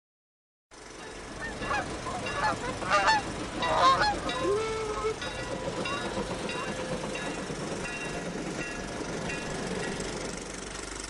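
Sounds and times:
geese honking: 1.3 - 6.9.

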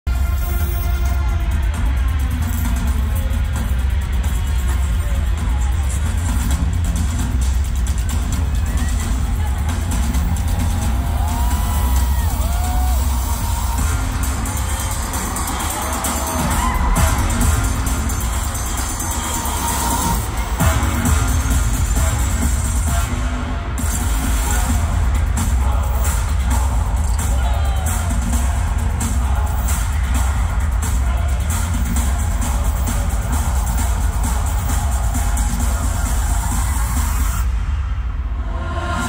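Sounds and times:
crowd shouting and cheering: 0.0 - 39.0
loud concert music: 0.0 - 39.0.

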